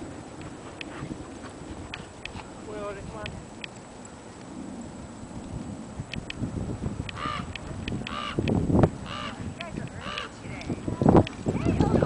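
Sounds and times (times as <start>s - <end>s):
dogs scuffling on sand: 0.0s - 3.2s
wind rumble: 0.0s - 12.0s.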